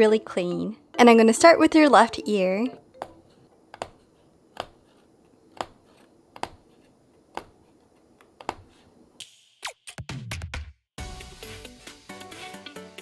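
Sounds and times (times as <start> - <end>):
punch needle clicking through fabric: 3.0 - 6.6, 8.2 - 8.7.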